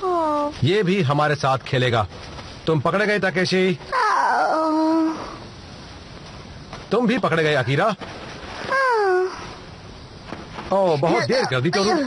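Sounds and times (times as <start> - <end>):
whining vocal cry: 3.9 - 5.4.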